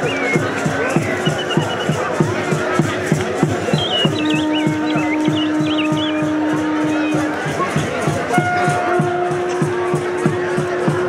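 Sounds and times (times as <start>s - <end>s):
high wavering whistle: 0.0s - 2.0s, 3.7s - 6.4s
drum beaten steadily: 0.0s - 11.0s
long steady note: 4.2s - 11.0s.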